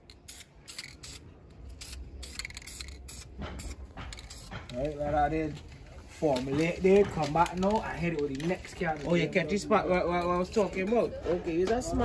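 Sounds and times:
aerosol can spraying: 0.3 - 1.2, 1.8 - 4.7.

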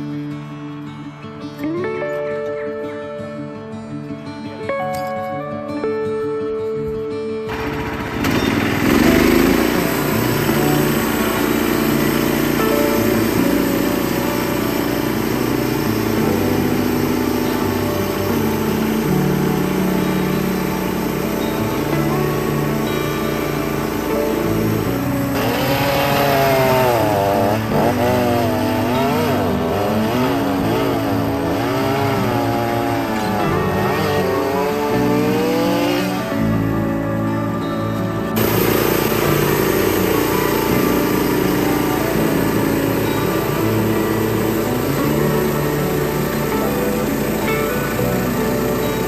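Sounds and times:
background music: 0.0 - 49.0
sawmill gasoline engine cutting: 7.5 - 49.0.

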